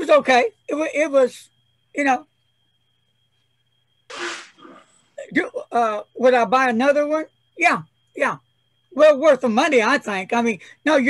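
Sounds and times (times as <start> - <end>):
sharp burst of breath: 4.1 - 5.1.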